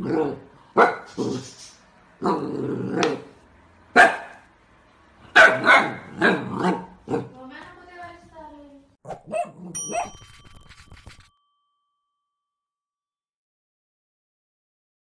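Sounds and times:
puppy barking: 0.8 - 1.2, 3.9 - 4.5, 5.2 - 7.3, 9.0 - 10.3
puppy whining: 9.1 - 11.2
short chime: 9.7 - 13.0.

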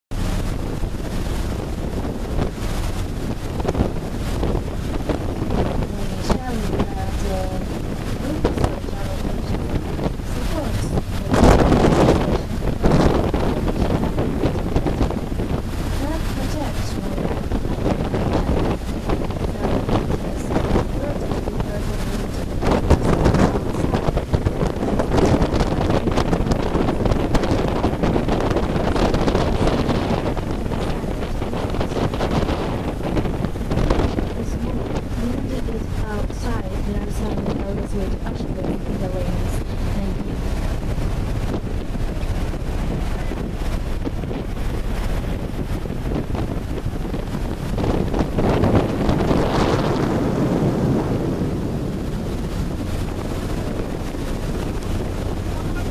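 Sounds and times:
water rushing: 0.1 - 55.9
wind buffeting microphone: 0.1 - 55.9.

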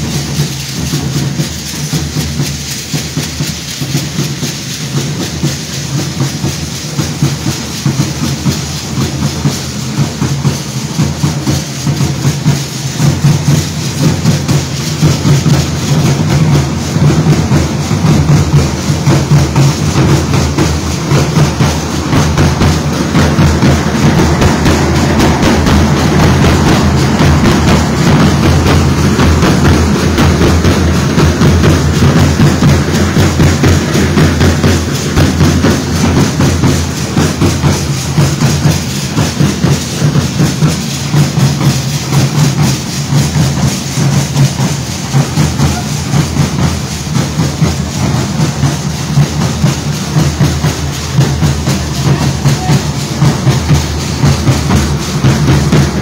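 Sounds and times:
bass drums beating: 0.0 - 56.0
dancers rattling and clattering: 0.0 - 56.0.

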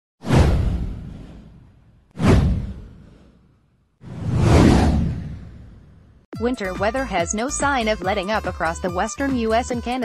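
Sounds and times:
whoosh with deep boom: 0.2 - 6.3.

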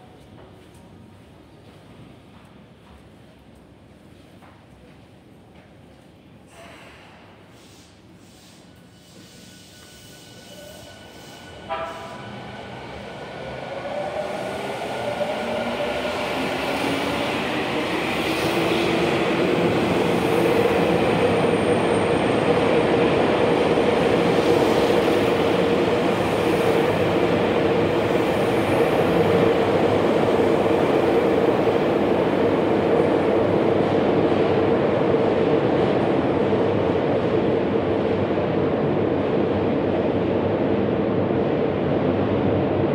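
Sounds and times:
train standing at platform: 0.0 - 42.9
air hiss: 6.6 - 11.6.

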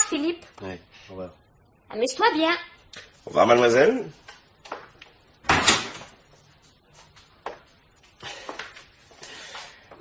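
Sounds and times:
door closing: 5.4 - 6.1.

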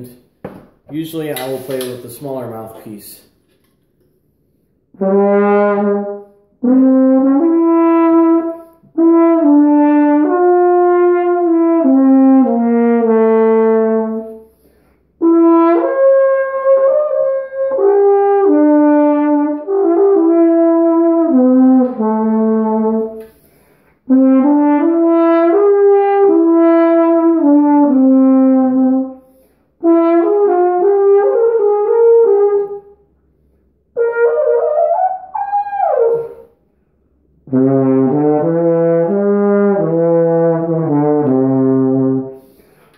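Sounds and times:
brass horn playing slow melody: 4.9 - 36.5, 37.2 - 42.8.

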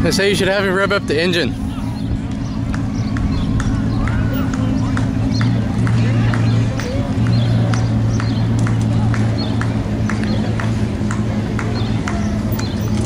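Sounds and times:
vehicle engine idling: 0.0 - 13.0.

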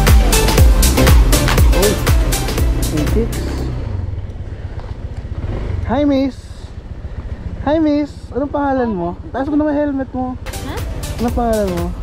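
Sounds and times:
scooter engine rumbling: 0.0 - 12.0.

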